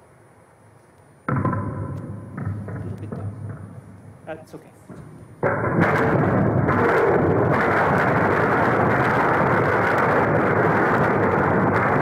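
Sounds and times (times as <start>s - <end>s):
ping-pong balls bouncing: 1.3s - 3.8s, 4.9s - 12.0s.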